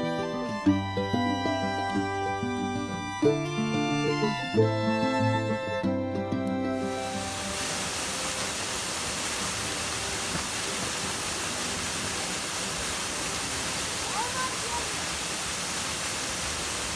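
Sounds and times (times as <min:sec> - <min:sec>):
small waterfall rushing into pool: 0:06.6 - 0:16.9.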